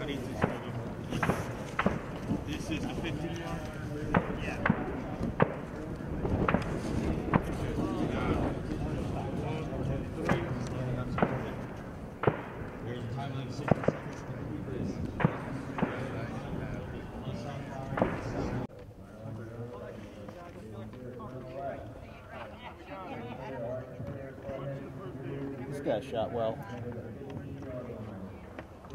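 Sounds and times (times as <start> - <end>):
murmuring voices: 0.0 - 28.9
gunshot cracks: 0.4 - 2.1.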